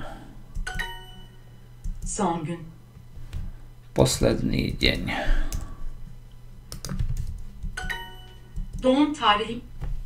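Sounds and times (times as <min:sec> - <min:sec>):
keyboard keys clicking: 0:06.7 - 0:08.0.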